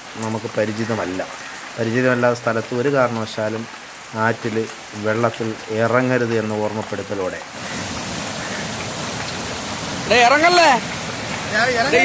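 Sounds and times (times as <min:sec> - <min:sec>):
water rushing over rocks: 0:02.6 - 0:12.0.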